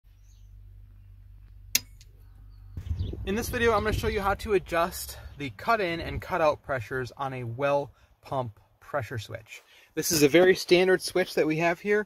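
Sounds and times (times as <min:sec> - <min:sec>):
steady low hum: 0:00.1 - 0:05.5.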